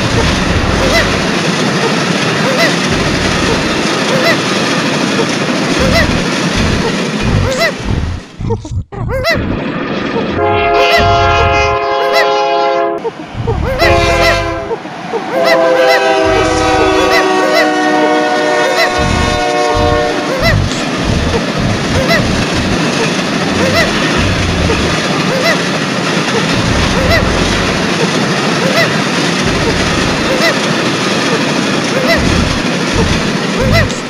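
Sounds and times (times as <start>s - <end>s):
train rumbling and clattering: 0.0s - 34.0s
train horn chord: 10.4s - 13.0s, 13.9s - 14.7s, 15.4s - 20.3s.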